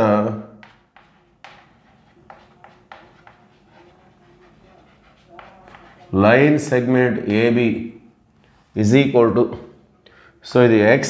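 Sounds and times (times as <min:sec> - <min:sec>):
chalk scratching on blackboard: 0:00.6 - 0:06.5.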